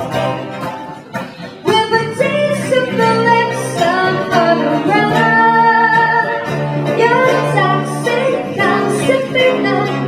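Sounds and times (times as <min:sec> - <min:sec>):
acoustic guitars: 0:00.0 - 0:10.0
person singing into a microphone: 0:01.6 - 0:10.0.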